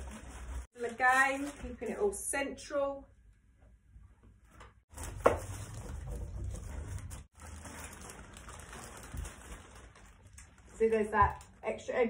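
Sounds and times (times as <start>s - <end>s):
crisp packets crackling under iron: 0.0s - 2.2s, 4.9s - 12.0s.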